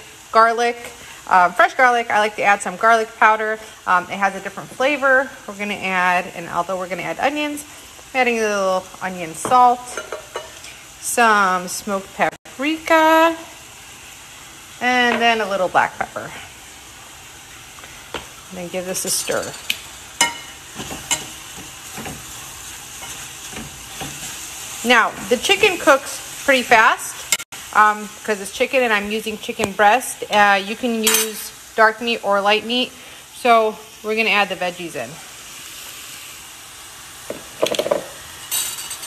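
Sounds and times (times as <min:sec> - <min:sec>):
chicken sizzling in a pan: 0:00.0 - 0:39.0.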